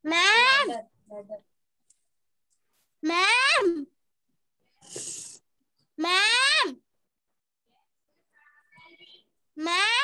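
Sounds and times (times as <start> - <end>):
child's voice: 0.0 - 1.5.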